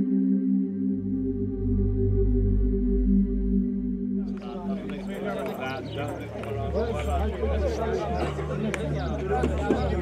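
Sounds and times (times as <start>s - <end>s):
men talking at once: 4.2s - 10.0s.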